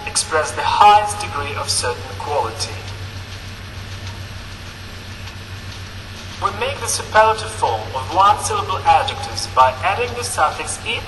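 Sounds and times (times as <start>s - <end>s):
constant low hum: 0.0s - 11.0s
steady hiss: 0.0s - 11.0s.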